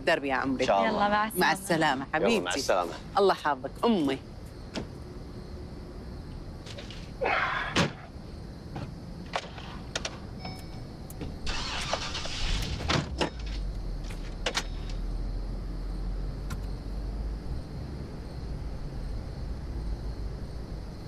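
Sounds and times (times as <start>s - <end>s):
truck engine starting: 11.4s - 15.2s.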